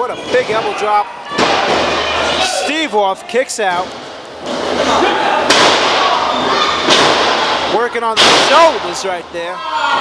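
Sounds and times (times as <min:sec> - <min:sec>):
crowd murmur: 0:00.0 - 0:07.7.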